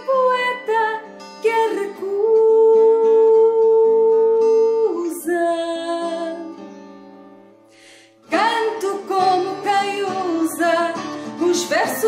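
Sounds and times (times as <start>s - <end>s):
softly strummed guitar: 0.0s - 12.0s.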